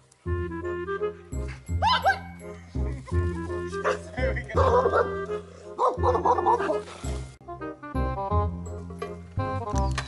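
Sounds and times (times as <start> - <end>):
background music: 0.0 - 10.0
dog barking: 3.8 - 5.2, 5.8 - 6.8.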